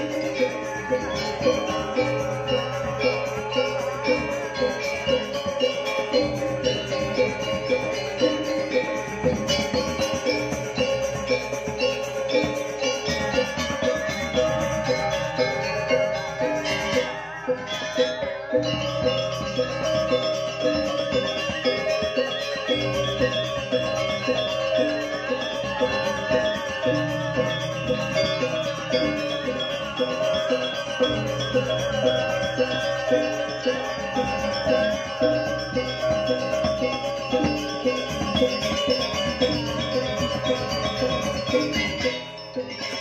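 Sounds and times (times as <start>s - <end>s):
gamelan ensemble playing: 0.0s - 43.0s.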